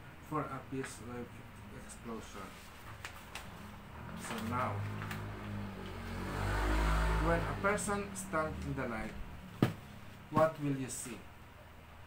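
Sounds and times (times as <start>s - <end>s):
vehicle engine rumbling: 2.7s - 10.7s.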